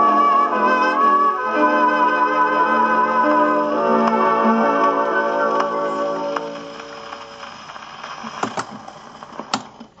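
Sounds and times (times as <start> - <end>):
dance band chord on gramophone: 0.0 - 8.6
record surface crackle: 2.3 - 10.0
sharp record clicks: 4.8 - 10.0.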